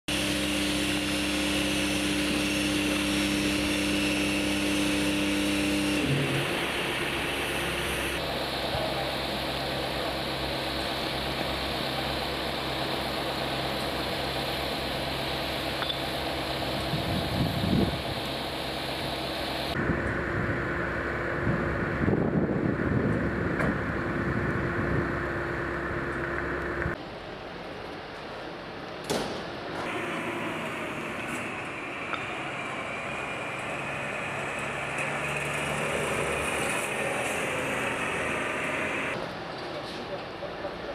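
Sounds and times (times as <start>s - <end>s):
engine running: 0.1s - 27.0s, 29.8s - 39.3s.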